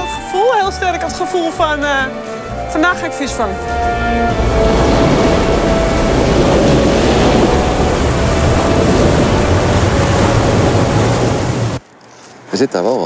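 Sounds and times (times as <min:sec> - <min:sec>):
wind: 0:00.0 - 0:13.0
choppy sea water rushing: 0:03.2 - 0:11.8
low rumble: 0:03.3 - 0:11.8
ship's bow wave breaking: 0:03.7 - 0:11.8.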